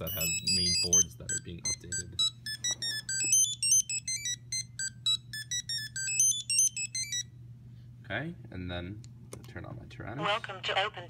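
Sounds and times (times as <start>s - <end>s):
beeped startup melody: 0.0s - 7.3s
low steady hum: 0.0s - 11.0s.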